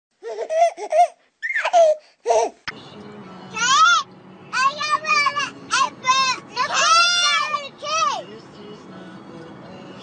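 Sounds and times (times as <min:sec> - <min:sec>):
baby laughing: 0:00.2 - 0:02.7.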